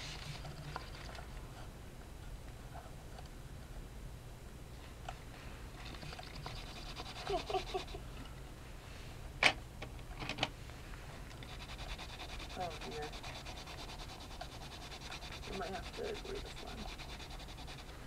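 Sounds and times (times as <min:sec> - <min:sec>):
pencil scratching on paper: 0:06.5 - 0:08.0, 0:11.4 - 0:18.0.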